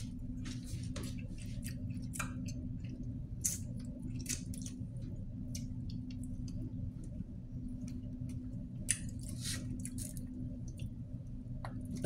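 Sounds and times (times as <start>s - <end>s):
wet chewing and lip-smacking: 1.0s - 7.1s.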